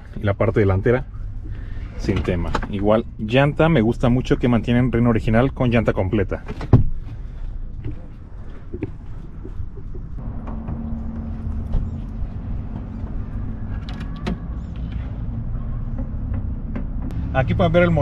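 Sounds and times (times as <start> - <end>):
car engine idling: 6.1 - 18.0.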